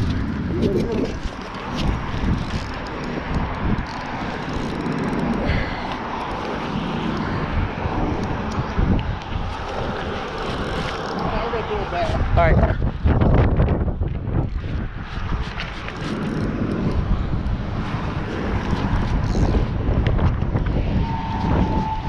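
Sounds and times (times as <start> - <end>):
traffic noise: 0.0 - 22.0
wind buffeting microphone: 0.0 - 22.0.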